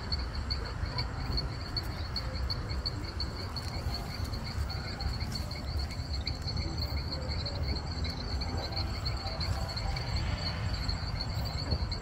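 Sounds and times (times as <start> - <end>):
insects trilling: 0.0 - 12.0
low steady rumble: 0.0 - 12.0.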